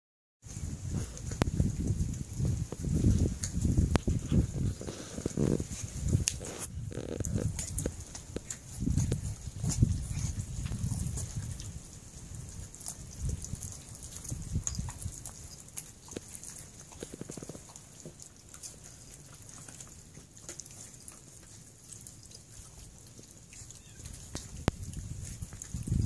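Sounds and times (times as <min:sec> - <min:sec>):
puppies gnawing bones: 0:00.5 - 0:26.0
puppies grunting: 0:04.5 - 0:25.9.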